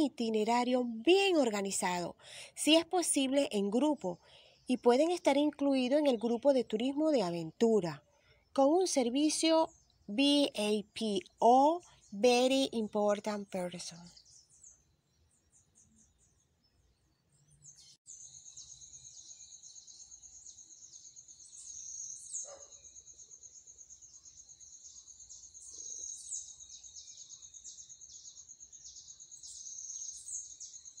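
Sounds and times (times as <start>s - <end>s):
birds and insects chirping: 0.0s - 31.0s.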